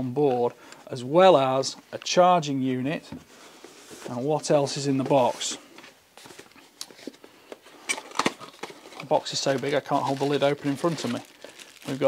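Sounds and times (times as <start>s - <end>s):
hands handling small box: 3.2s - 12.0s.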